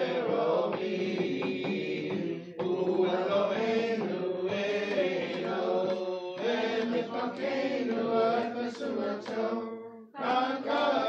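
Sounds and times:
congregation chanting a prayer: 0.0s - 11.0s.

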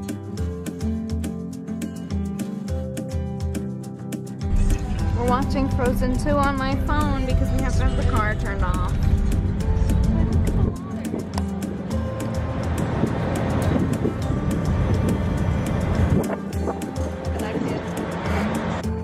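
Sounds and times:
background music: 0.0s - 19.0s
deep rumble: 4.4s - 11.4s.

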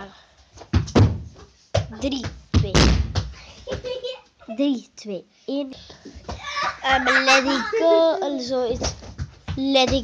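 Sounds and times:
child's voice: 3.9s - 10.0s.

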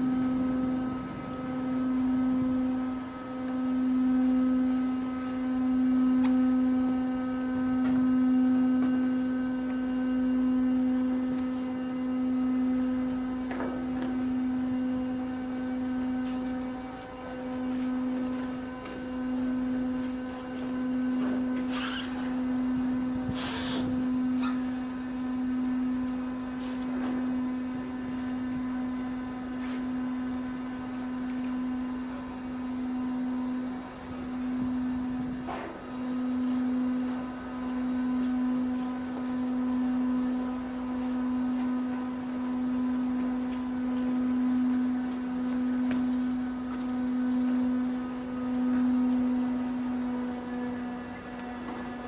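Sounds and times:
ship machinery hum: 0.0s - 52.0s.

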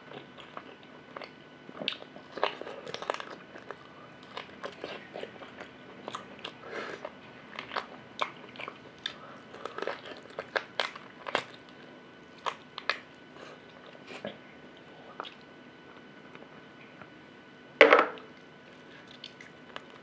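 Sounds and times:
chewing and biting ribs: 0.0s - 15.5s.

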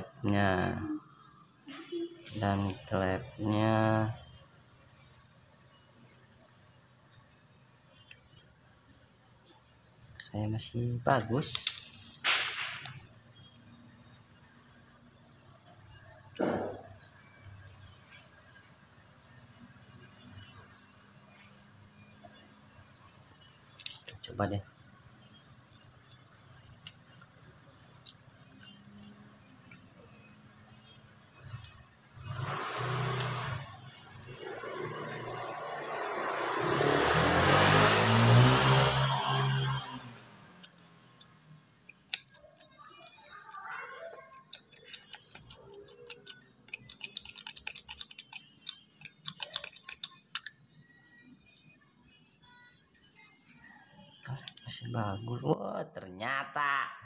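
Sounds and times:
plastic sprayer parts clicking: 41.9s - 43.2s.

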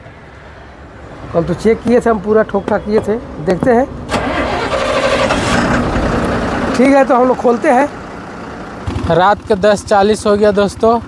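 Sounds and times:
vehicle engine running: 3.5s - 11.0s.

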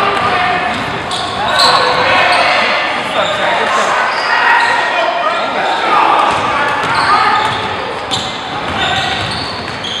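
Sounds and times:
crowd voices calling out: 0.0s - 10.0s.

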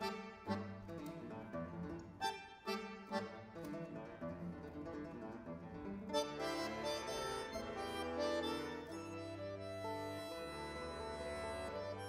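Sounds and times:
accordion chords: 0.0s - 12.0s
classical guitar: 0.0s - 12.0s.

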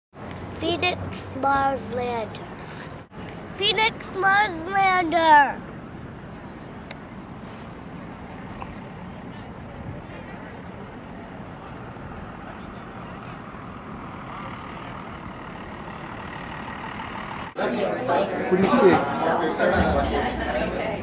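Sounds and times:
street noise: 0.1s - 21.0s
close-by voices: 0.2s - 15.5s, 17.6s - 21.0s
distant crowd: 0.2s - 21.0s.

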